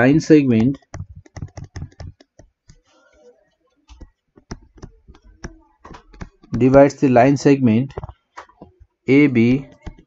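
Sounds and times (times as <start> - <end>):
stylus tapping on tablet: 0.4 - 3.0, 3.9 - 7.0, 9.6 - 10.0.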